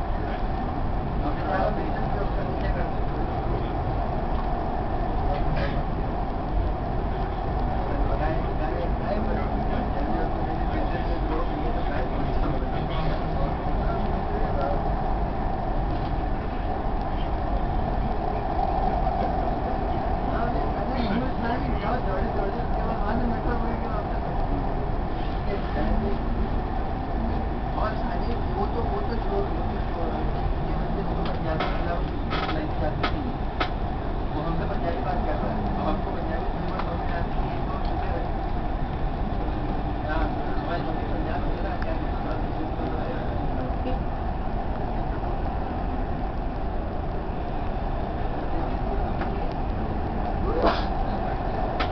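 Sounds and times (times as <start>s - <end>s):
indistinct passenger voices: 0.0s - 51.9s
train rumbling inside carriage: 0.0s - 51.9s.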